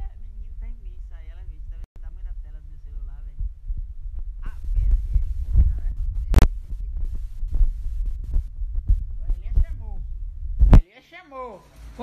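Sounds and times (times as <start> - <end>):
phone microphone handling rumble: 0.0 - 10.8.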